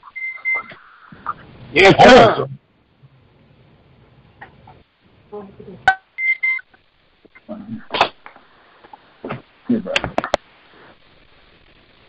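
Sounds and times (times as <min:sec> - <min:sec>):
high electronic beep: 0:00.2 - 0:00.7, 0:06.2 - 0:06.7.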